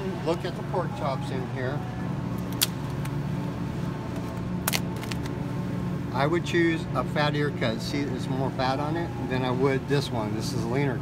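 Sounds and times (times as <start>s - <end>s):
refrigerated case humming: 0.0s - 11.0s.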